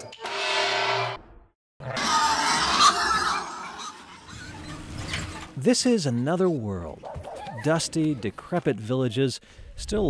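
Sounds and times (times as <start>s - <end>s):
pigs squealing: 1.8s - 8.1s.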